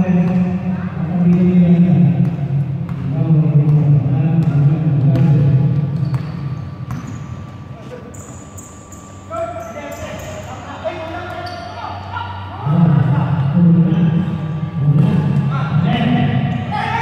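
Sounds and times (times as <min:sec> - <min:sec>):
sneakers squeaking: 0:00.0 - 0:17.0
basketball bouncing: 0:00.1 - 0:07.5.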